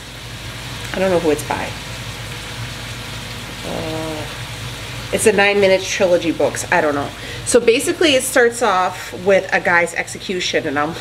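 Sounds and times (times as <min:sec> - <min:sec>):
food sizzling in a pan: 0:00.0 - 0:11.0
woman murmuring: 0:03.6 - 0:04.4.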